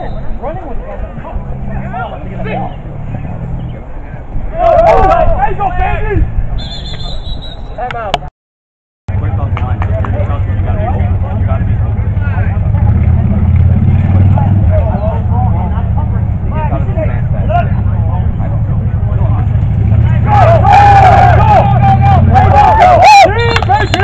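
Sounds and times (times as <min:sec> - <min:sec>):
players shouting: 0:04.4 - 0:07.0, 0:19.9 - 0:24.0.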